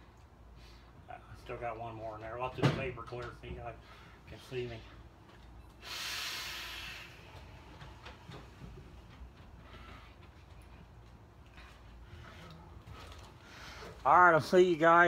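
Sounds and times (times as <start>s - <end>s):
man exhaling vape breath: 5.8s - 7.8s.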